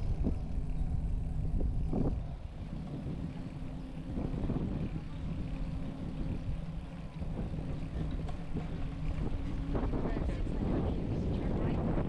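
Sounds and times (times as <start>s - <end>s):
bicycle tyre and road noise: 0.0s - 12.0s
wind on microphone: 0.0s - 12.0s.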